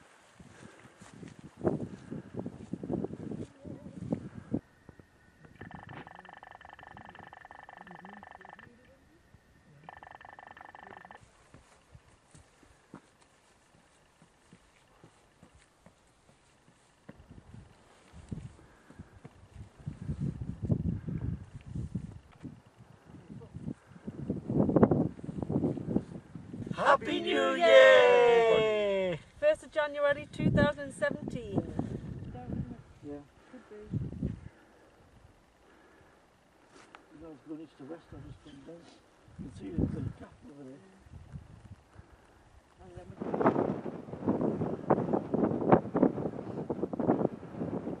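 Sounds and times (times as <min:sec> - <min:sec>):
wind buffeting microphone: 0:00.4 - 0:06.1, 0:17.2 - 0:26.8, 0:30.1 - 0:33.0, 0:33.9 - 0:34.5, 0:39.3 - 0:40.3, 0:41.0 - 0:48.0.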